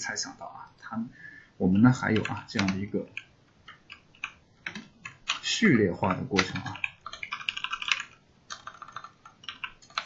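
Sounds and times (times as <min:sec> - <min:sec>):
computer keyboard typing: 0:01.7 - 0:10.0.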